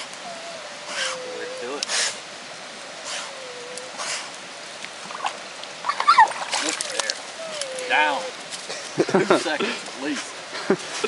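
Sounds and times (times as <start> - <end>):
water splashing in a steel bucket: 5.0 - 7.3.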